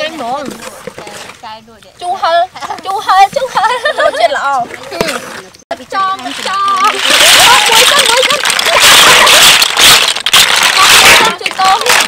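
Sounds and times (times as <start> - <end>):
snail shells clattering into metal bowl: 6.2 - 12.0.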